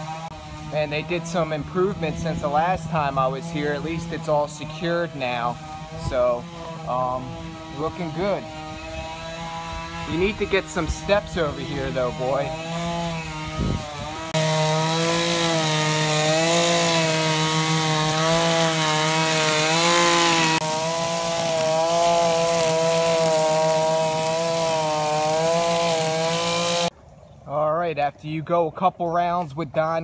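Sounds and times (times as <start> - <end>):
string trimmer engine running: 0.0 - 26.9.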